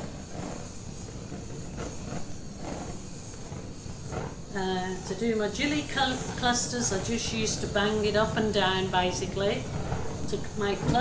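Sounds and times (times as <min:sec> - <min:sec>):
torch flame hissing: 0:00.0 - 0:11.0.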